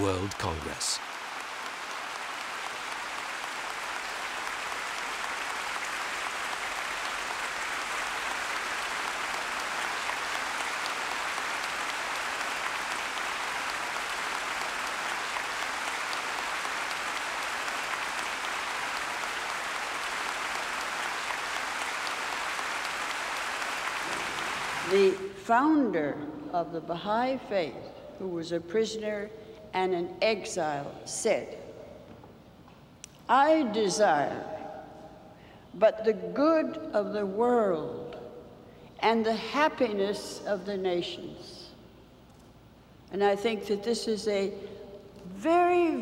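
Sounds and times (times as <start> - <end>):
large audience applauding: 0.0 - 25.0.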